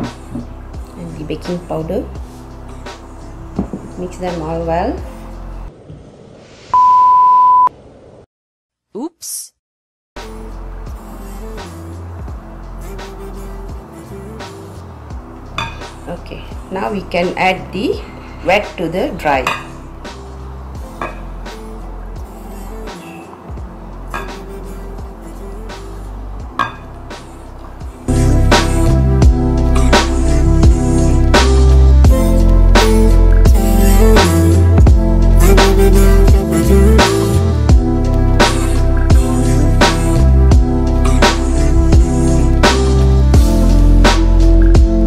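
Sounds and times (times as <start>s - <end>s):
quiet background music: 0.0s - 5.7s, 10.2s - 45.0s
censor bleep: 6.7s - 7.7s.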